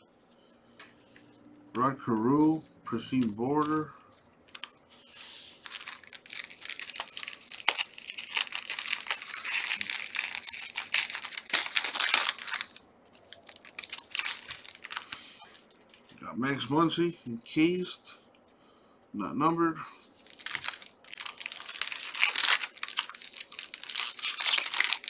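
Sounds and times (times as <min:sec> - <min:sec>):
wrapper being torn and crinkled: 0:05.6 - 0:16.1, 0:20.2 - 0:25.0.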